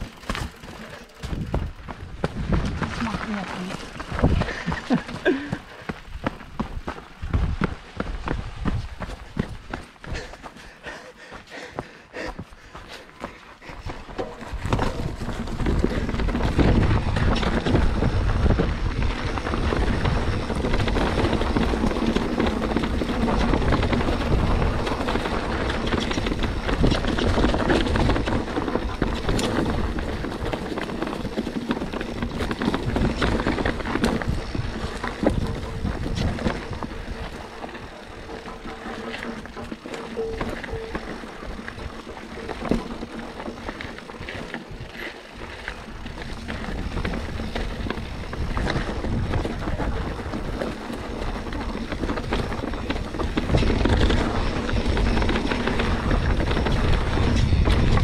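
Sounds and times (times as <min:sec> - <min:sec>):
tyres crunching over stones: 0:00.0 - 0:11.4, 0:12.6 - 0:58.0
bike rattling and knocking: 0:00.0 - 0:58.0
wind on microphone: 0:01.2 - 0:05.0, 0:06.0 - 0:10.3, 0:13.7 - 0:39.0, 0:44.2 - 0:58.0.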